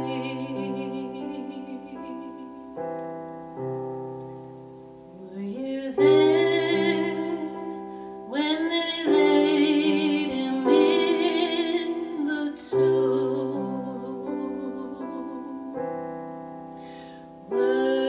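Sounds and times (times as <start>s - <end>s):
woman singing with vibrato: 0.0s - 3.0s, 5.1s - 16.2s, 17.5s - 18.0s
piano chords: 0.0s - 18.0s.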